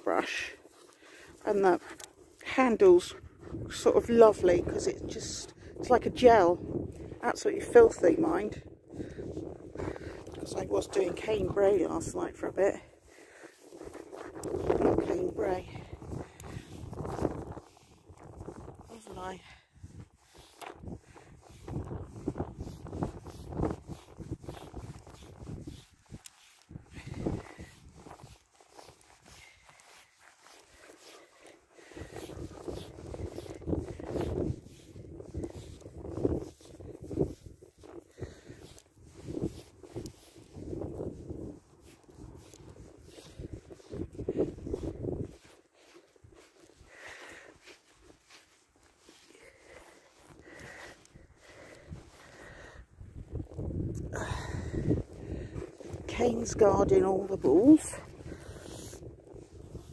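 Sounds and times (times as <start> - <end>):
comb rasping through dog fur: 0.0 - 8.5, 9.4 - 52.5, 54.8 - 59.9.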